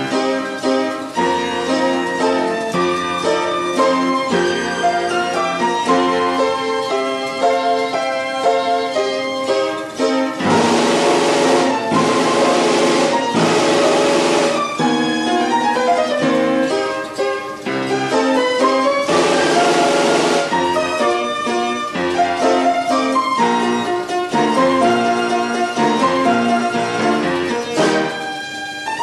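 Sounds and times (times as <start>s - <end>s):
percussion noise: 10.4s - 15.0s, 19.0s - 21.1s
orchestrion pipes playing tune: 10.4s - 15.5s, 19.0s - 21.4s.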